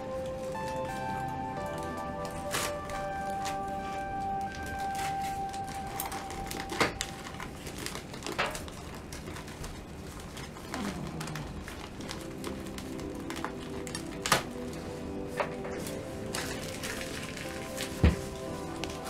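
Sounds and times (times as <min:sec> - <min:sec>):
background music with held notes: 0:00.0 - 0:08.7, 0:11.6 - 0:19.0
plastic wrap crinkling: 0:00.0 - 0:19.0.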